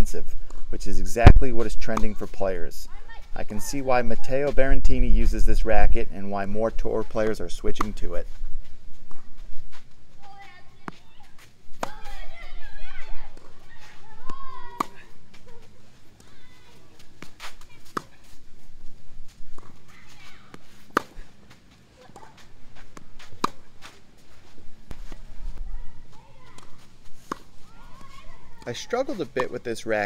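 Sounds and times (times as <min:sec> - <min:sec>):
footsteps on clay court: 0:06.4 - 0:30.0
tennis ball hit by racket: 0:07.2 - 0:08.0, 0:11.8 - 0:12.4, 0:13.3 - 0:15.2, 0:17.2 - 0:18.4, 0:19.5 - 0:21.3, 0:22.1 - 0:24.0, 0:26.4 - 0:29.6.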